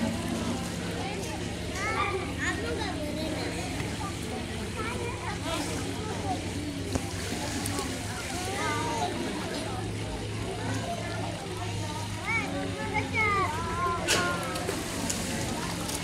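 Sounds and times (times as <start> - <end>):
children calling and chattering: 0.0 - 16.0.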